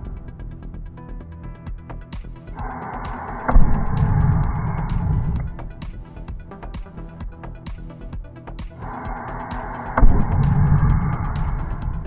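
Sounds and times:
electronic music with beat: 0:00.0 - 0:12.0.

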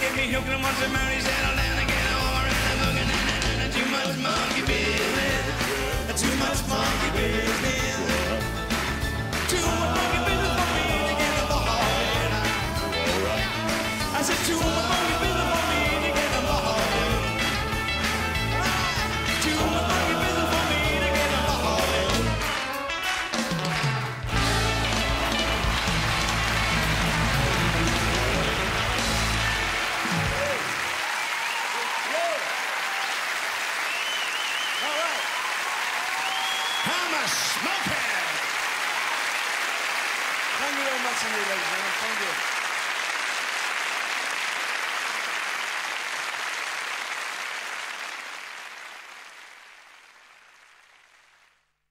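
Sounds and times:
audience applauding and cheering: 0:00.0 - 0:51.8
rock band chord: 0:23.0 - 0:30.5
shouts and whistles: 0:33.8 - 0:37.4.

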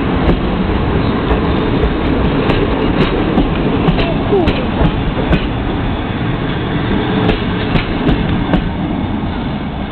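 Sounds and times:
train coaches rumbling past: 0:00.0 - 0:09.9.

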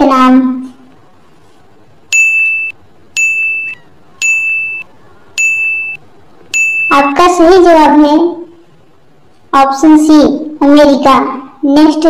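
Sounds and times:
electronic countdown beeps: 0:02.1 - 0:07.2.

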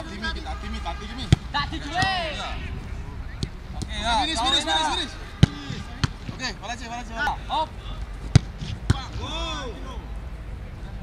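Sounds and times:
players shouting calls: 0:00.0 - 0:10.2
ball caught in gloves: 0:08.3 - 0:09.0
football kicked hard: 0:08.3 - 0:09.1.

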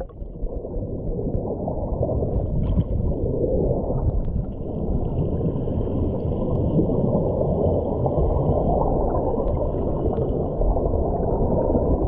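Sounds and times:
muffled underwater rush: 0:00.0 - 0:12.0.

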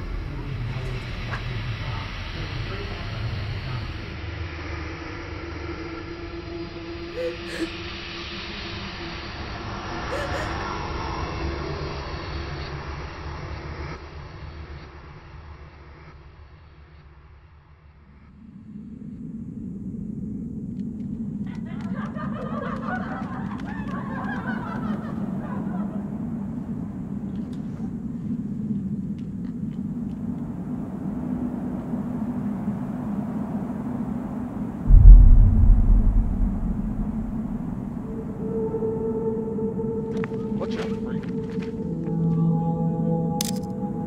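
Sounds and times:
deep boom: 0:34.9 - 0:38.2
low drone: 0:34.9 - 0:39.8.

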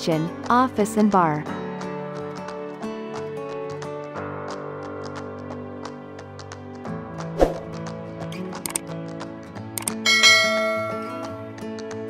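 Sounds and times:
background music: 0:00.0 - 0:12.0
bell chime ringing: 0:10.0 - 0:11.5.

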